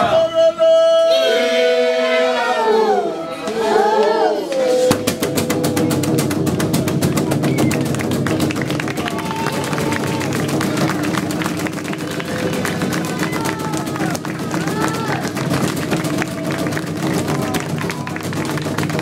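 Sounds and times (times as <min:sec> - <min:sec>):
group singing: 0:00.0 - 0:06.3
scattered voices: 0:00.0 - 0:18.2
fast rhythmic percussion: 0:04.8 - 0:19.0.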